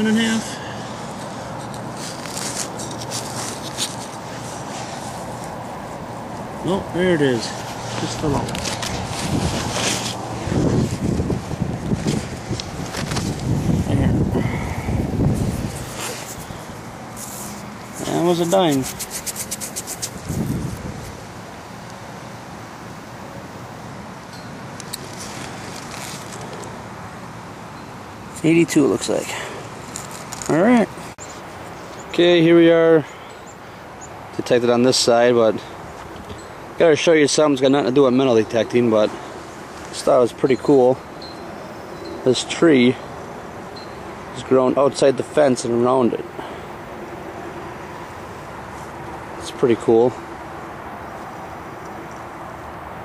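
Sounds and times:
steady outdoor noise: 0.0s - 53.0s
fingertips rubbing soil off coin: 1.2s - 6.0s, 15.2s - 21.2s
knife cutting soil: 17.2s - 20.6s.

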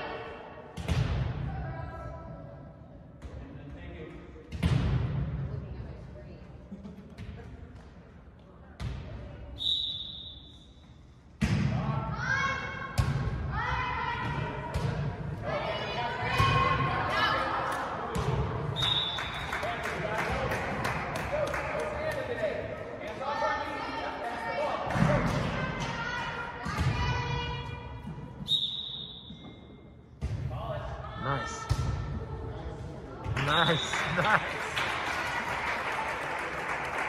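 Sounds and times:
referee whistle blast: 9.6s - 10.6s, 28.4s - 29.4s.

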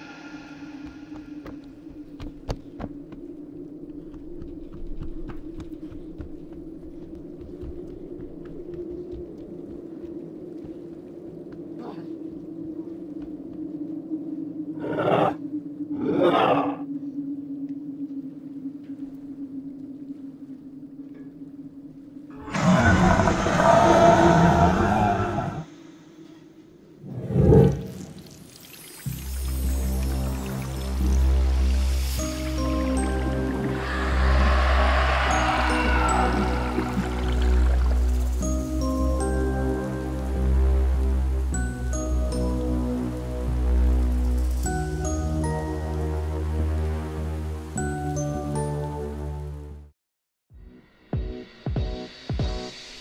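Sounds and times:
loud creature roar: 22.4s - 25.7s, 33.7s - 37.9s
steady low drone: 29.2s - 47.6s.

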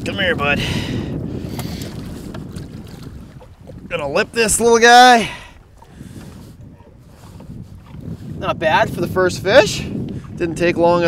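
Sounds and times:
faint water splashes: 0.0s - 8.7s
wind rumble on microphone: 0.0s - 11.0s.

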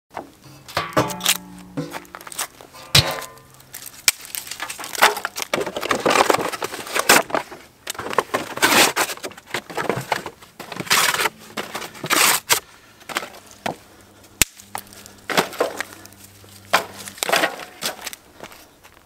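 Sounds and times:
metal lid clanking: 0.7s - 2.2s, 2.8s - 3.6s
cardboard tearing and crumpling: 3.8s - 12.6s.

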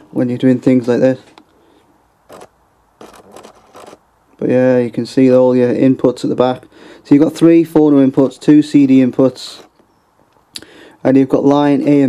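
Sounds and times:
handling scrapes and rubbing: 2.3s - 4.0s, 9.3s - 9.8s.

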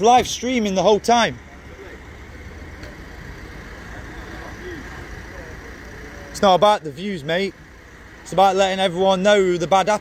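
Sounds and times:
vehicle engine and traffic hum: 0.0s - 10.0s
faint distant voices: 1.4s - 6.6s.

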